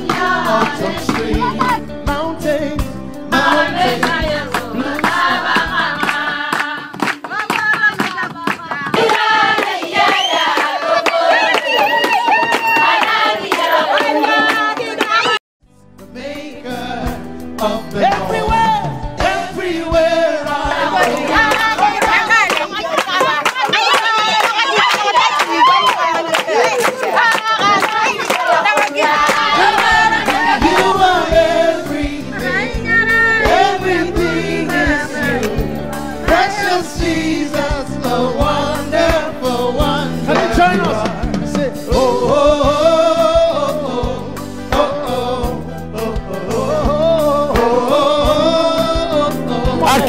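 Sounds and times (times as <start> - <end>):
rhythmic hand clapping: 0.0 - 2.2, 3.3 - 15.4, 20.2 - 43.5
group of voices singing: 0.0 - 15.4, 16.0 - 50.0.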